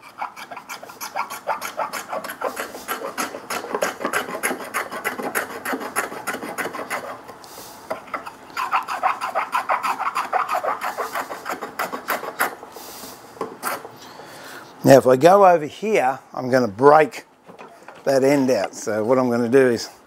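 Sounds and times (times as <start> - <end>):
block plane rasping on wood: 0.0 - 7.2, 8.0 - 12.6.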